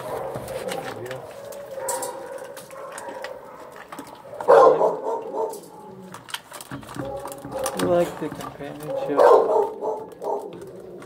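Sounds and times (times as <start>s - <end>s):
dog chewing: 0.0s - 6.1s, 6.9s - 11.0s.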